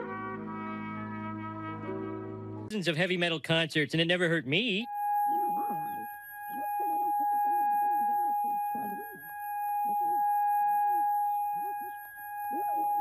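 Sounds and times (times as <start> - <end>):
muffled garbled voice: 2.7 - 4.9
high-pitched ear-ringing tone: 4.8 - 13.0.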